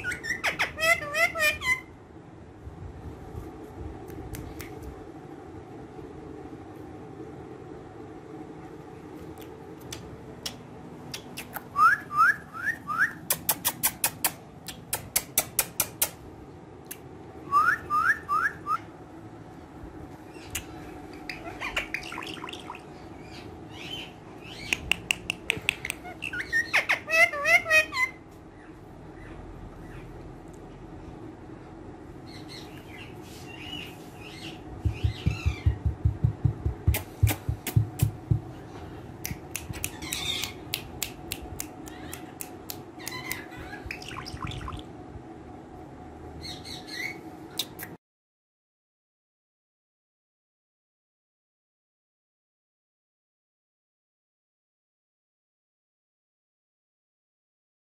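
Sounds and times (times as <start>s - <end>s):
parakeet chirping and squawking: 0.0s - 2.0s, 21.2s - 24.9s, 25.9s - 30.2s, 32.3s - 36.0s, 39.8s - 40.7s, 43.0s - 44.8s, 46.4s - 47.2s
low thumps: 34.8s - 38.6s.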